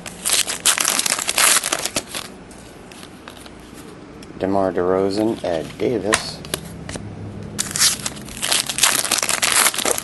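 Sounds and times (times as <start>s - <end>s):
foil wrapper tearing and crinkling: 0.0s - 2.3s, 7.6s - 10.0s.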